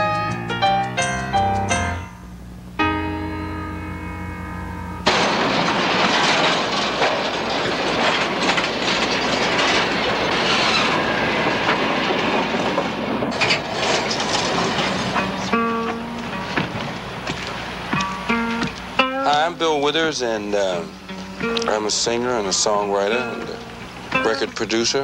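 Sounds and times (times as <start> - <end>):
plucked guitar notes: 0.0 - 5.1, 15.1 - 25.0
train rushing: 5.0 - 25.0.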